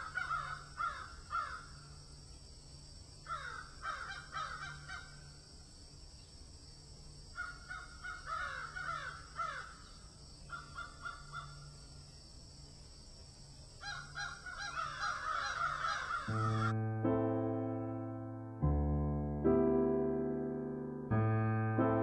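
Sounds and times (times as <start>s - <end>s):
birds calling: 7.4s - 12.0s, 13.8s - 16.8s
piano music: 16.3s - 22.0s.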